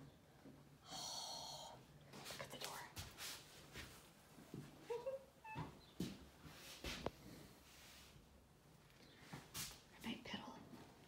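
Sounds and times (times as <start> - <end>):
faint whispered words: 0.9 - 3.1, 9.9 - 10.8.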